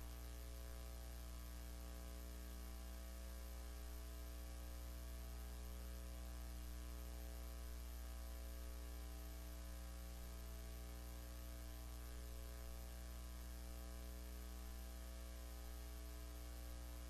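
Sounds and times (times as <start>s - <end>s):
faint electrical mains hum: 0.0s - 17.0s.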